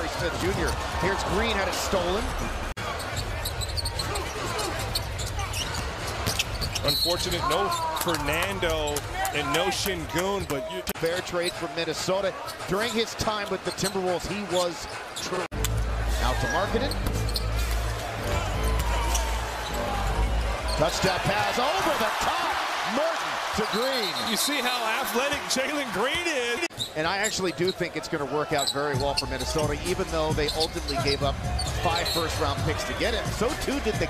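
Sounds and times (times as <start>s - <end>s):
crowd noise: 0.0s - 34.0s
sneaker squeaks: 2.8s - 9.1s, 12.4s - 15.5s, 16.3s - 18.0s, 18.7s - 19.8s, 20.5s - 21.3s, 26.7s - 27.9s, 28.5s - 32.6s
arena music: 15.5s - 21.4s.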